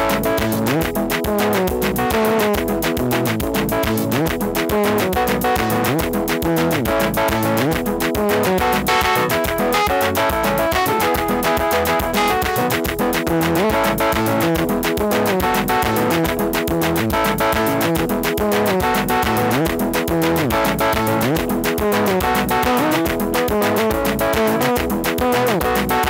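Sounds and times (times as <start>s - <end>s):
bass line: 0.0s - 26.0s
electronic keyboard melody: 0.0s - 26.0s
steady beat: 0.0s - 26.0s.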